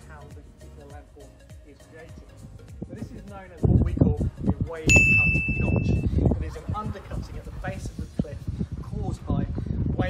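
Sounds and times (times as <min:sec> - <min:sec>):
high bell-like ding: 0:04.9 - 0:06.0.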